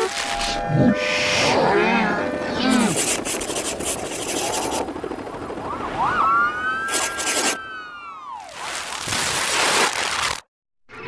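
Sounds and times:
warbling pitch-shifted voice: 0.0 - 4.9, 5.9 - 7.6.

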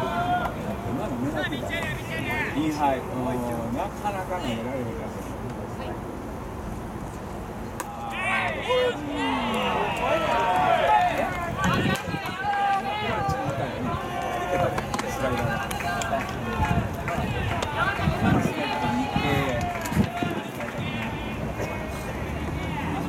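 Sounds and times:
voices shouting over one another: 7.9 - 21.4.

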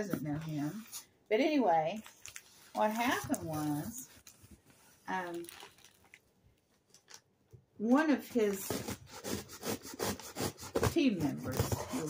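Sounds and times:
scraping on cardboard box: 8.6 - 12.0.

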